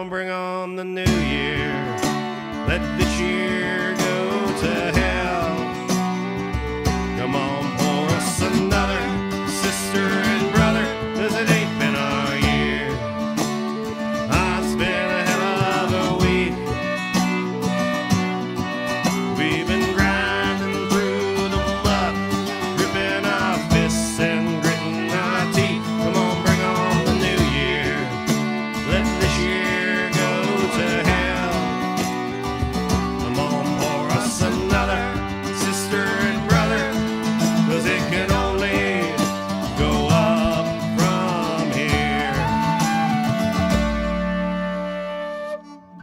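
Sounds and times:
strummed acoustic guitar: 1.0 - 46.0
frame drum: 4.0 - 44.4.

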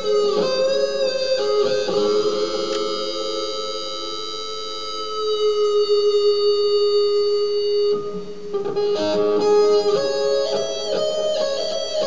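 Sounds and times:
electric guitar lead note: 0.0 - 12.0.

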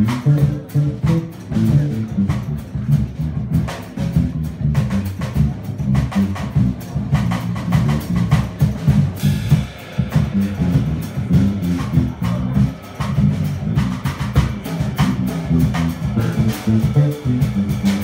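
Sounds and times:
drum kit with cymbal strokes: 0.0 - 18.0
electric bass guitar walking: 0.0 - 18.0.

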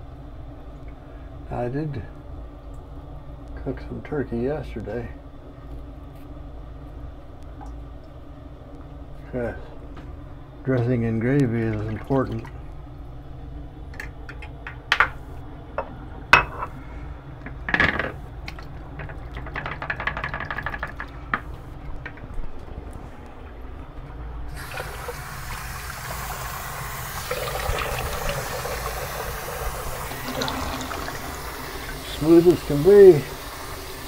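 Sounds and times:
water splashing at sink: 10.7 - 12.7, 18.4 - 22.8, 24.5 - 34.0
water running from sink tap: 24.5 - 34.0.

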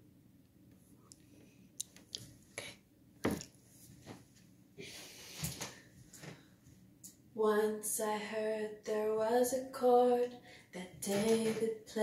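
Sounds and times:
footsteps in small room: 3.2 - 6.9.

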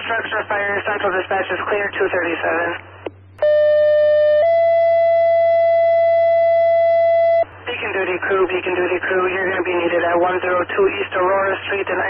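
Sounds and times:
two-tone radio paging tones: 3.4 - 8.4.

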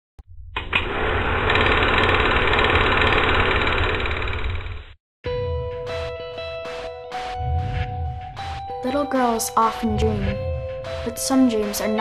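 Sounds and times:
film projector clatter: 0.8 - 4.8
low rumble: 7.4 - 11.6.

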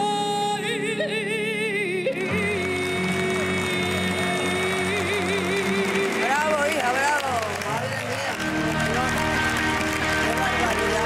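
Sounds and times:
band accompaniment: 2.8 - 11.0.

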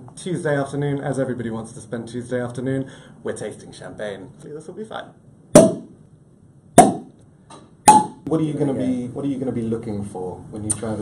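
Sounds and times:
sharp ringing knocks: 7.9 - 8.2.

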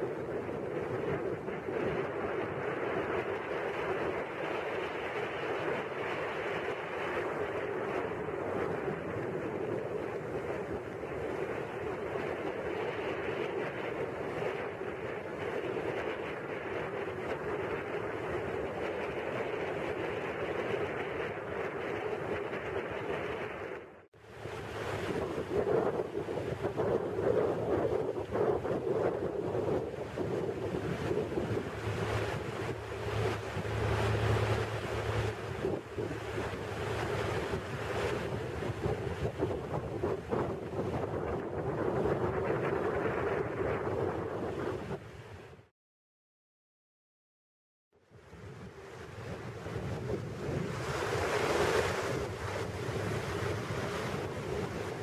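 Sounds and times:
water rushing past hull: 0.0 - 45.7, 48.1 - 55.0
wind buffeting microphone: 0.0 - 45.7, 48.1 - 55.0
motorboat engine running: 24.2 - 43.2.

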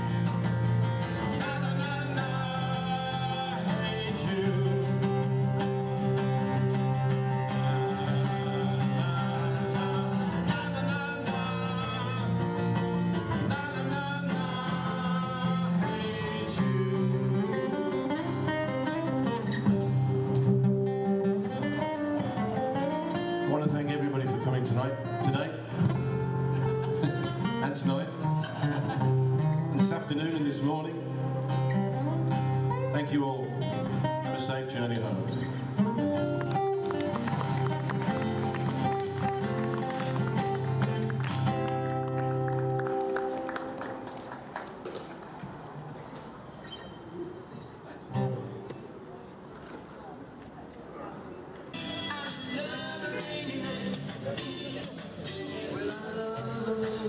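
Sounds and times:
acoustic guitars picked and strummed: 0.0 - 44.5, 47.8 - 49.0, 51.7 - 57.0.

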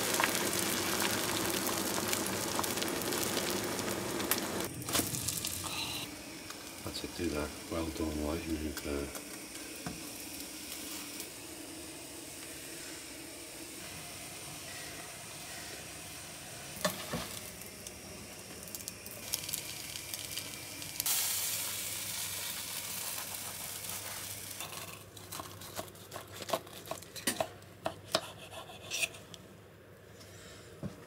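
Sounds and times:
omelette sizzling in a pan: 0.0 - 26.9.

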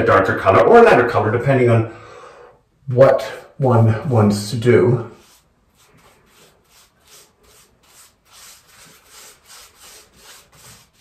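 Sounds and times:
paintbrush swishing on wood: 5.1 - 11.0.

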